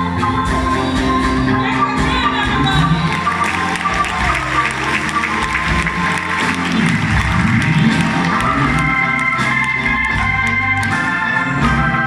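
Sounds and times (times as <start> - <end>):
electric guitar: 0.0 - 12.0
keyboard: 0.0 - 12.0
live blues band playing: 0.0 - 12.0
audience applauding: 2.8 - 11.6.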